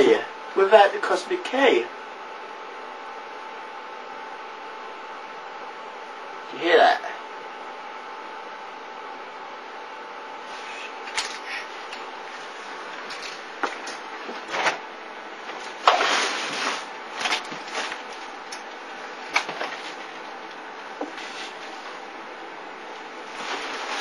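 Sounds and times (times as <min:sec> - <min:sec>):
rustling: 0:15.5 - 0:18.3, 0:23.2 - 0:24.0.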